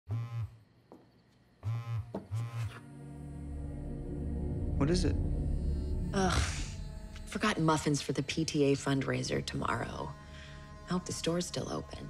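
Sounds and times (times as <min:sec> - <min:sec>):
phone vibrating on a table: 0:00.1 - 0:00.6, 0:01.6 - 0:02.8.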